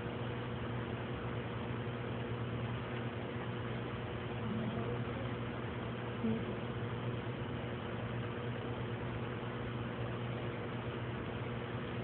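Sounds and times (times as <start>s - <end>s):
machine hum with tones: 0.0s - 12.0s.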